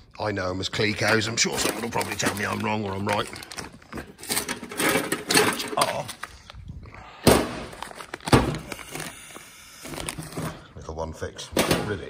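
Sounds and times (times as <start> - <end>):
man speaking indistinctly: 0.2 - 3.6, 10.6 - 12.0.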